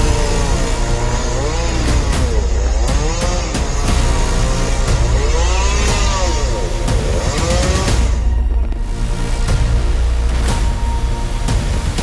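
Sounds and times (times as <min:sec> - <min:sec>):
chainsaw cutting tree trunk: 0:00.0 - 0:08.3
background music: 0:00.0 - 0:12.0.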